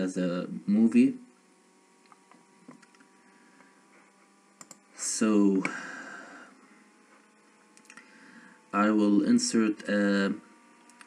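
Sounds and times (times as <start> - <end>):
faint electrical hum: 0.0 - 11.0
computer mouse clicks: 4.6 - 4.8.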